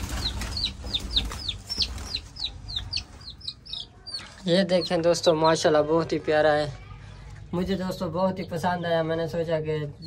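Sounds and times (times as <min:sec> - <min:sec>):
chick peeping: 0:00.0 - 0:06.6.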